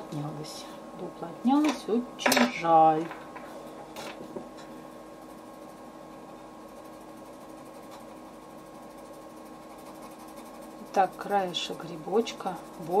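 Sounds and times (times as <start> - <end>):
steady hum: 0.0 - 13.0
pencil scratching on paper: 5.2 - 13.0.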